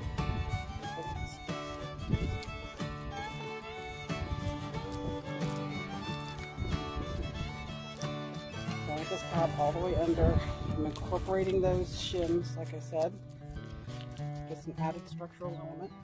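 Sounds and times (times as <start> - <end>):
instrumental music with sliding pitches: 0.0 - 16.0.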